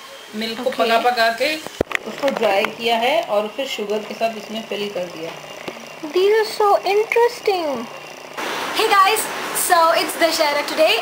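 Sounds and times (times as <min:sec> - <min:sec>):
people talking: 0:00.3 - 0:05.4, 0:06.0 - 0:07.9, 0:08.8 - 0:11.0.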